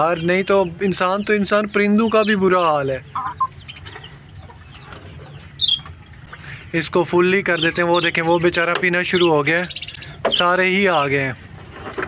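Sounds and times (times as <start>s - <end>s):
birds calling faintly: 0.0s - 12.0s
short high-pitched bird call: 3.2s - 3.5s.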